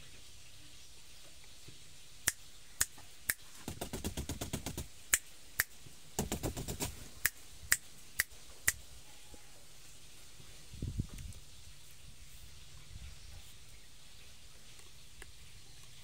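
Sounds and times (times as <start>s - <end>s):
sharp clicks: 2.3s - 8.8s.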